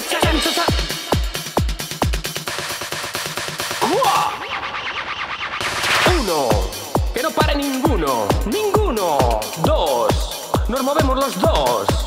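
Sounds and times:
electronic upward sweep: 0:03.8 - 0:07.0
stuttering electronic hits: 0:04.4 - 0:06.3.

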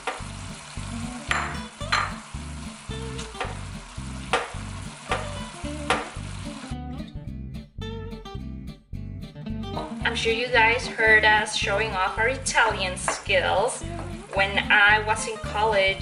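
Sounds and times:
meat sizzling in a frying pan: 0:00.0 - 0:06.8
background music: 0:00.3 - 0:16.0.

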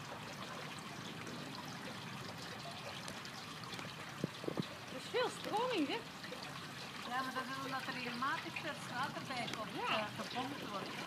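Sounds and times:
pond water trickling and lapping: 0:00.0 - 0:11.0.

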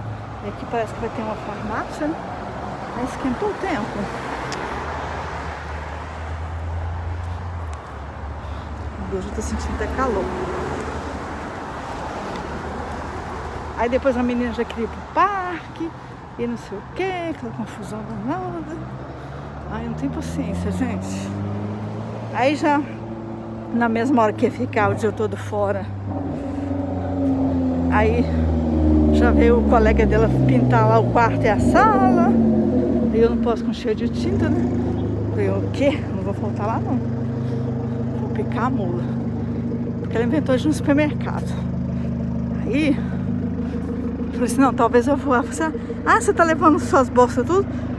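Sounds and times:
cars passing: 0:00.0 - 0:47.9
low traffic rumble: 0:00.0 - 0:47.9
vehicle engine droning: 0:00.0 - 0:47.9.

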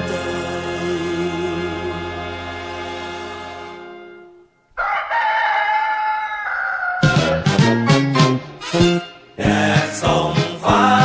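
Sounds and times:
held music chord: 0:00.0 - 0:04.6
rooster crowing: 0:04.7 - 0:07.5.

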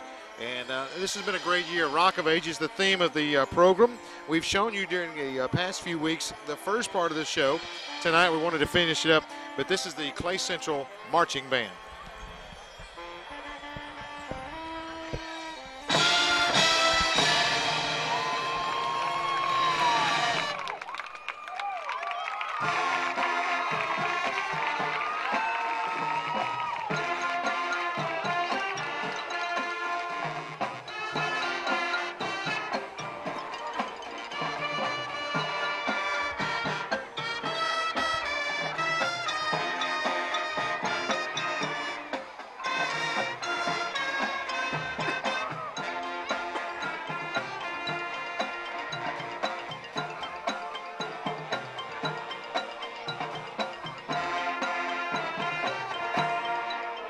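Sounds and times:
marching band brass: 0:00.0 - 0:21.2, 0:21.9 - 0:57.0
steady drum beat: 0:11.6 - 0:20.6.

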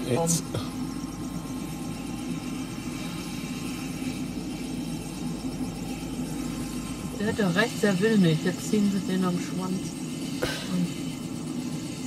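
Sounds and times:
low rumble of vehicle engines: 0:00.0 - 0:12.0.

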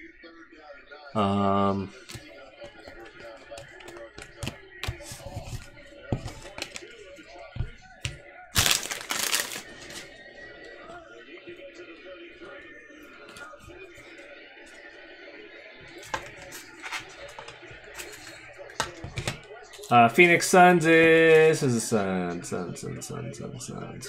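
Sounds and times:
faint background music: 0:00.0 - 0:24.0
wrapper rustling: 0:08.5 - 0:10.1.

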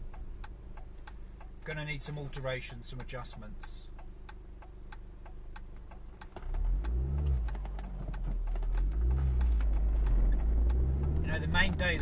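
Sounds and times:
steady ticking: 0:02.6 - 0:12.0
car engine pulling away: 0:06.3 - 0:12.0.

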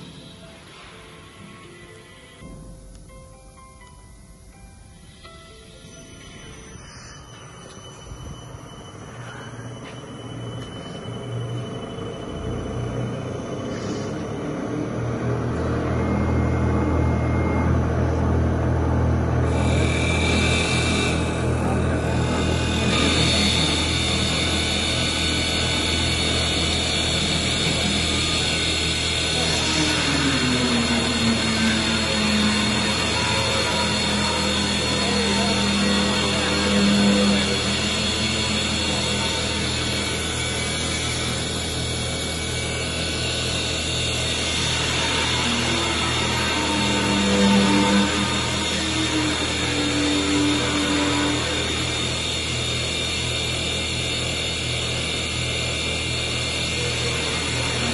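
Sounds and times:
low motor hum: 0:09.8 - 0:57.9
wood lathe cutting: 0:12.2 - 0:57.9.

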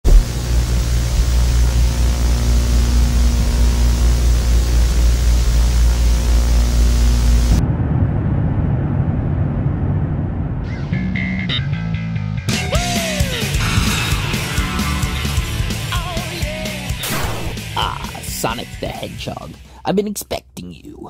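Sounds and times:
loud rushing noise: 0:00.0 - 0:00.6, 0:17.0 - 0:17.8
deep hum: 0:00.0 - 0:18.5.

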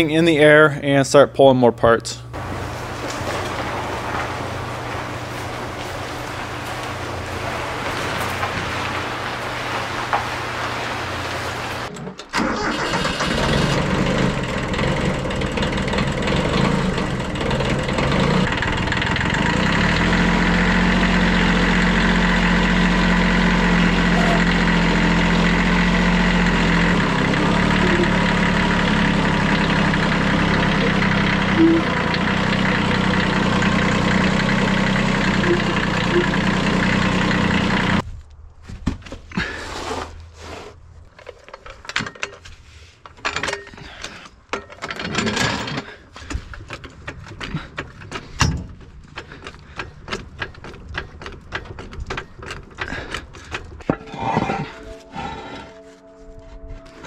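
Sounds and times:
tractor engine running: 0:02.3 - 0:38.1, 0:41.0 - 0:57.0.

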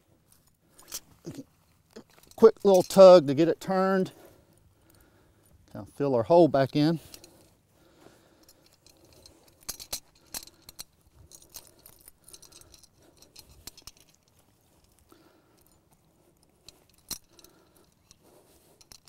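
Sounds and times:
metallic clicks and jingles: 0:00.2 - 0:19.0.

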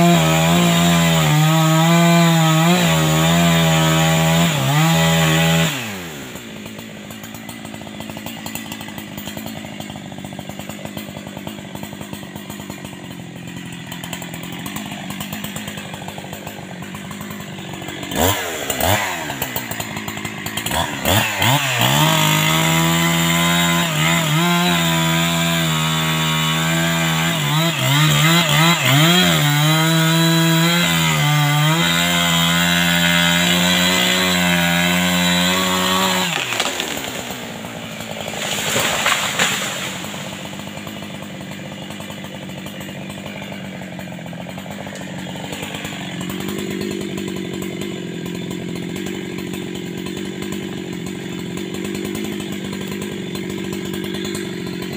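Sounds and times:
chainsaw cutting a tree: 0:00.0 - 0:54.9
chainsaw idling: 0:00.0 - 0:54.9
tree crashing through foliage: 0:13.5 - 0:52.8.

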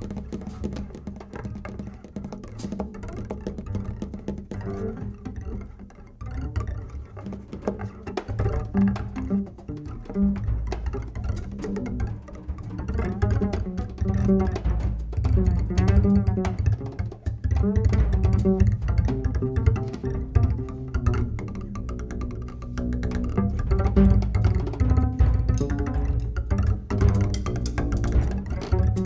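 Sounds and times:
double bass plucked and bowed: 0:00.0 - 0:29.0.

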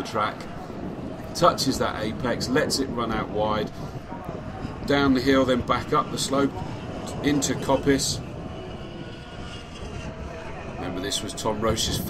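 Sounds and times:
race car engine droning: 0:00.0 - 0:12.0.

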